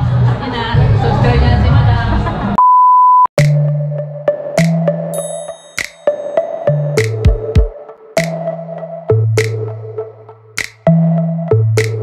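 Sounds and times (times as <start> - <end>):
steady beep tone: 2.6 - 3.3
busy music: 3.4 - 12.0
electronic music track: 3.4 - 12.0.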